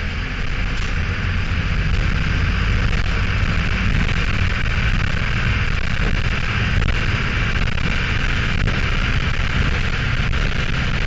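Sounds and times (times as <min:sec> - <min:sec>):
diesel bus engine running: 0:00.0 - 0:11.0
road and body noise: 0:00.0 - 0:11.0.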